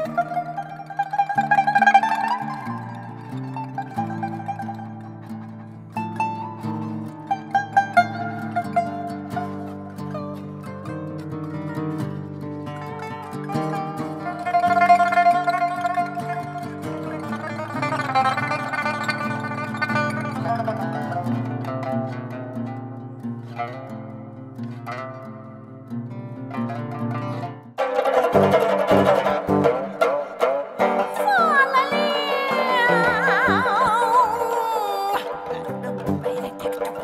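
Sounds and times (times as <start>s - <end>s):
plucked pipa and guitar music: 0.0s - 37.0s.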